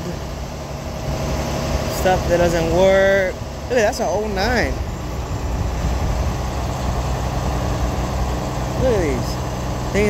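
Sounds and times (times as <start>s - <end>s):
vehicle engine humming: 0.0s - 10.0s.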